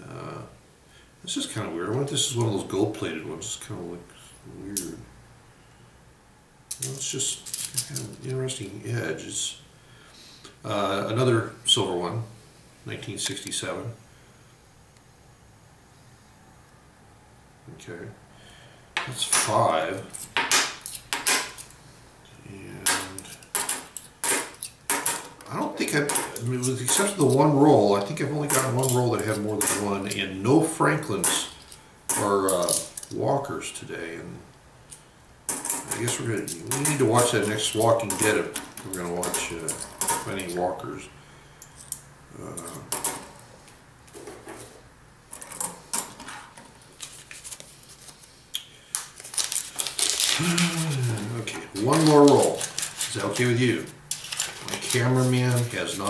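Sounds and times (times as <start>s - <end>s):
coins clinking on a stack: 19.3s - 21.7s, 22.8s - 25.4s, 26.0s - 27.5s, 28.4s - 30.2s, 31.2s - 33.1s, 51.8s - 55.8s.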